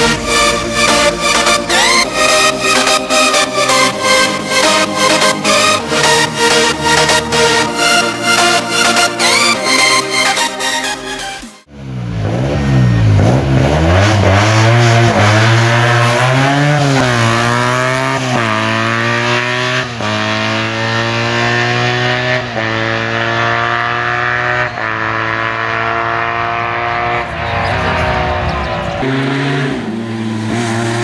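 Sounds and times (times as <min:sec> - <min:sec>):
car engine revving and accelerating: 0:00.0 - 0:09.6, 0:11.7 - 0:31.0.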